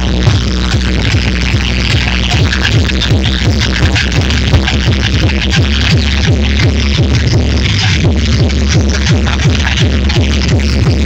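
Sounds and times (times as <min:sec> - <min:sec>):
deep kick-drum thumps: 0:00.0 - 0:11.0
electronic dance music: 0:00.0 - 0:11.0.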